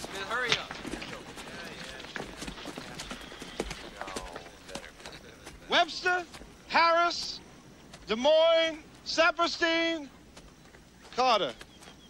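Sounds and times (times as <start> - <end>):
boot footsteps on packed dirt: 0.0 - 8.2, 10.2 - 12.0.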